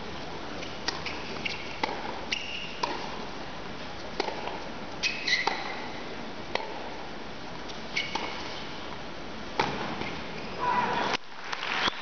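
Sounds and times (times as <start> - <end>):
ball bouncing: 0.8 - 2.2, 2.8 - 3.2, 4.2 - 4.6, 9.6 - 10.1
racket striking ball: 0.8 - 3.2, 4.2 - 4.6, 5.2 - 5.9, 6.5 - 6.9, 8.0 - 8.4, 9.6 - 10.2
shoes squeaking on hard court: 1.0 - 3.0, 5.0 - 5.9, 7.9 - 8.7.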